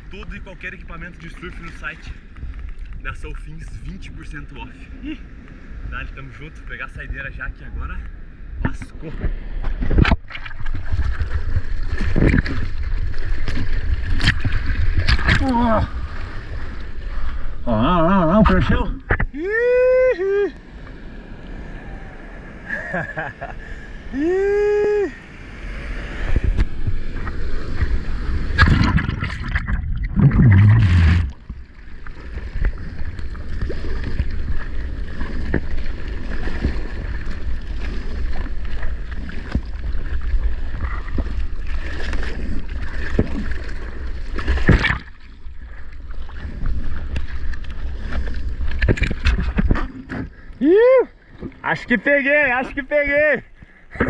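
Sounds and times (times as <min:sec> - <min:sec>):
low rumble of water and wind: 0:00.0 - 0:54.0
surf water churning and splashing: 0:00.0 - 0:54.0
man shouting: 0:19.4 - 0:20.5, 0:50.6 - 0:51.1
loud water splashes: 0:28.3 - 0:31.6.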